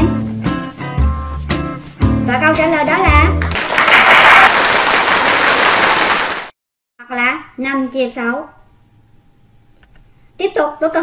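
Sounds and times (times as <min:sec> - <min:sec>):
applause: 0:03.3 - 0:06.6.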